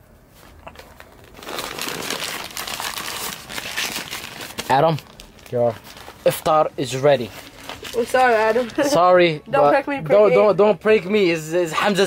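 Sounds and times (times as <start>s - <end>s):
paper wrapper crinkling: 0.5s - 9.0s.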